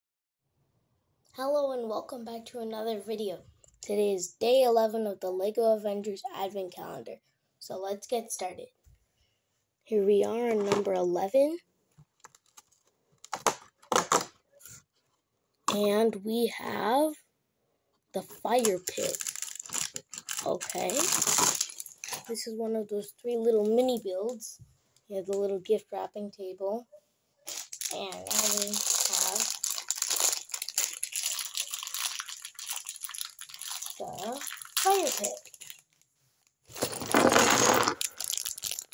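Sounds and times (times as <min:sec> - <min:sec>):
packaging crinkling and rustling: 0:12.0 - 0:14.4, 0:18.6 - 0:22.4, 0:27.5 - 0:38.9.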